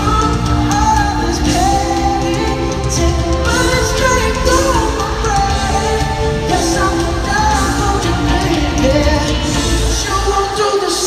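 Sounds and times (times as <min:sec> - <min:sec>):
live rock band playing: 0:00.0 - 0:11.0
man singing: 0:00.0 - 0:11.0.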